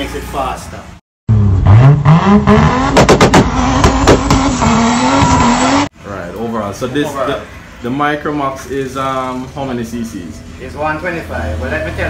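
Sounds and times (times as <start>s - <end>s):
racing car engine revving: 1.3s - 5.9s.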